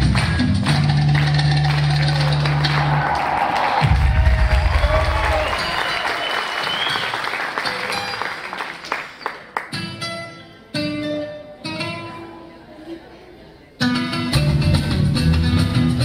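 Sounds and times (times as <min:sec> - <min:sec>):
audience applause: 0:00.0 - 0:09.8
audience cheering: 0:01.0 - 0:09.0.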